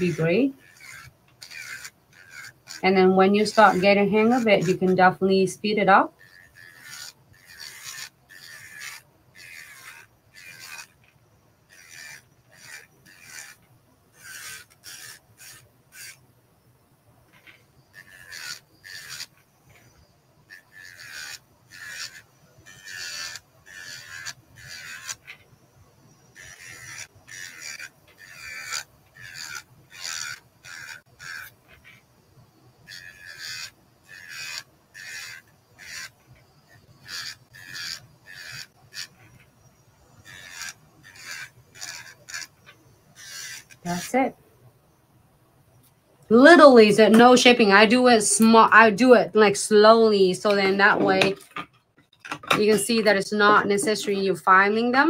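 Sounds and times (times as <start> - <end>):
electric nail drill grinding: 0.0 - 16.2, 17.2 - 44.3, 45.8 - 51.7, 52.5 - 55.0.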